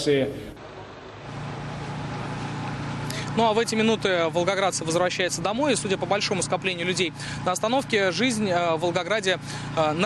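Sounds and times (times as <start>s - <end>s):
vehicle engine running: 0.6s - 10.0s
traffic hiss: 0.7s - 4.6s.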